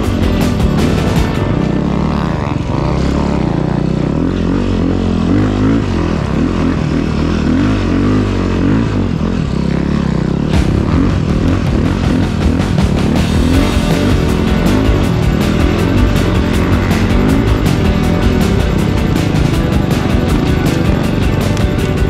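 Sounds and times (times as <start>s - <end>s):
music: 0.0s - 6.9s, 10.5s - 22.0s
snow bike engine revving: 0.0s - 22.0s.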